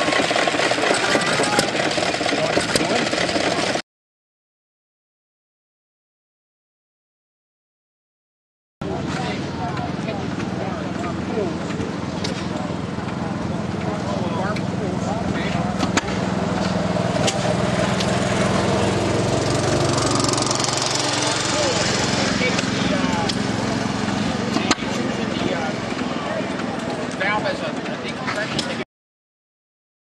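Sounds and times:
people talking: 0.0s - 3.8s, 8.8s - 17.9s, 19.8s - 28.8s
small engine running: 0.0s - 3.8s, 8.8s - 28.8s.

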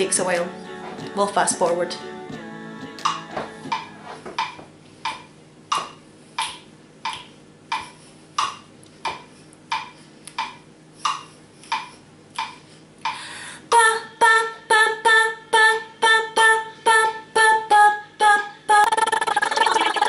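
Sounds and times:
held musical tone: 0.0s - 4.2s
metronome clicking: 6.4s - 13.2s.

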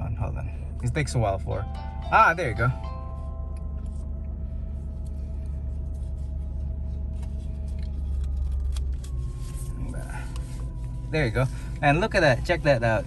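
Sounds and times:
car engine idling: 0.0s - 13.0s
faint steady tones: 0.0s - 13.0s.

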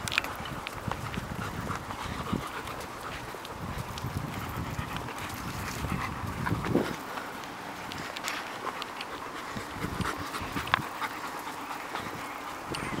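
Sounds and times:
footsteps on sandy dirt: 0.0s - 13.0s
dog panting: 0.4s - 13.0s.

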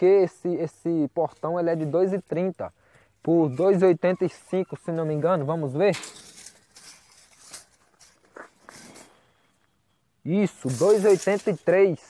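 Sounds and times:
tape measure scraping on metal: 3.6s - 9.2s, 10.4s - 11.9s
footsteps on ground: 6.1s - 9.2s.

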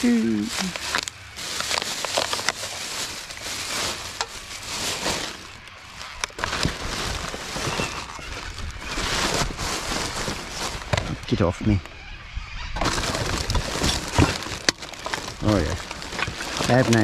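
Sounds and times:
plastic bags rustling: 0.0s - 11.5s, 12.8s - 17.0s.

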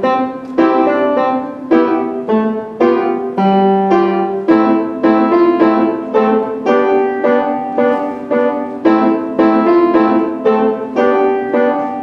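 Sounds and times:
solo acoustic piano: 0.0s - 12.0s.

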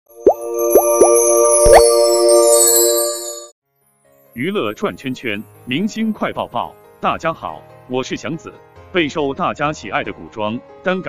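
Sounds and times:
held synth chord: 0.1s - 3.5s
high chimes: 0.1s - 3.6s
rising plops: 0.2s - 2.2s.

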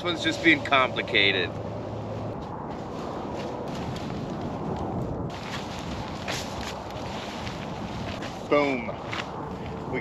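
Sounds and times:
tent fabric rustling and flapping: 2.7s - 9.4s
tent poles clicking and tapping: 3.4s - 9.4s.

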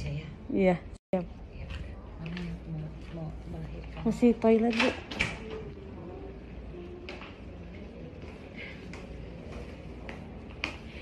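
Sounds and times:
low room noise: 0.0s - 11.0s
faint background voice: 5.2s - 11.0s.

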